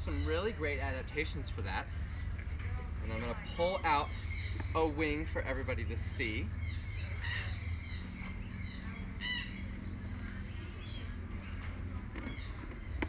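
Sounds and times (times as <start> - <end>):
birds chirping: 0.0 - 13.0
low background rumble: 0.0 - 13.0.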